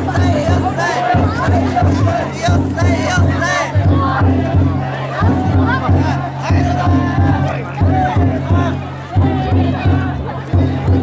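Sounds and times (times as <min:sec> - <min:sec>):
people shouting and chanting: 0:00.0 - 0:11.0
taiko drum beating: 0:00.0 - 0:11.0.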